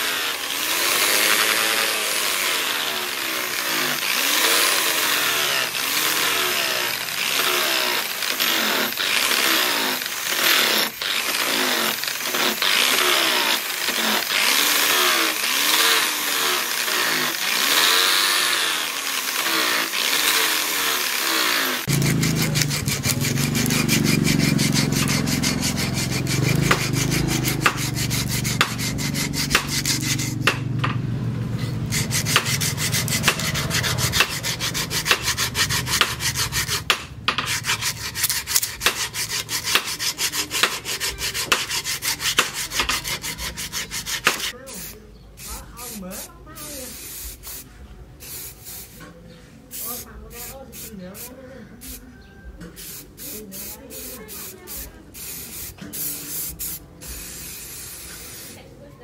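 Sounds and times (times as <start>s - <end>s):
sanding wood by hand: 0.0s - 30.8s, 31.6s - 47.6s, 52.7s - 58.7s
angle grinder on steel: 0.0s - 44.7s.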